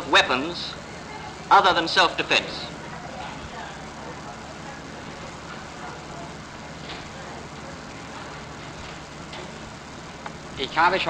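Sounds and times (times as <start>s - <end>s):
faint distant voices: 0.0s - 11.0s
recording hiss and hum: 0.0s - 11.0s.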